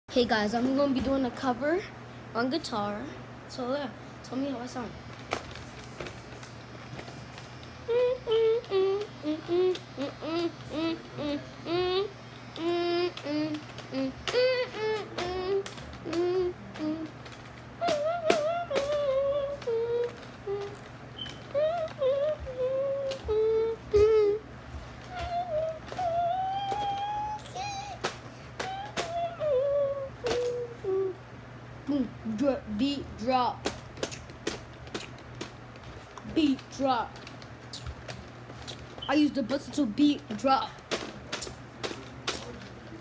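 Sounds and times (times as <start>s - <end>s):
boy singing wordless tune: 7.9s - 17.2s, 17.8s - 20.8s, 21.5s - 31.2s.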